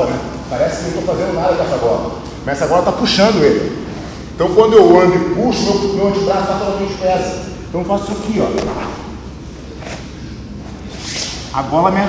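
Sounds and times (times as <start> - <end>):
fabric swish: 8.5 - 9.2
fabric rustling: 8.5 - 10.1.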